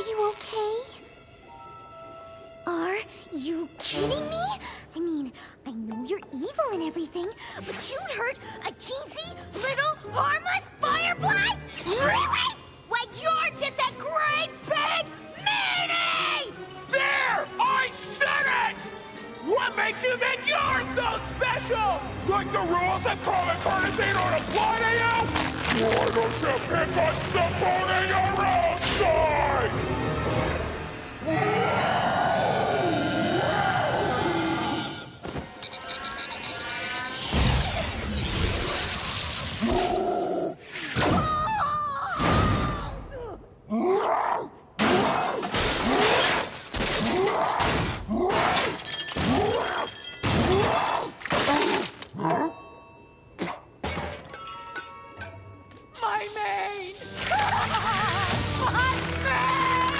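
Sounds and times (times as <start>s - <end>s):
dramatic orchestral music: 1.5s - 32.4s, 57.0s - 59.9s.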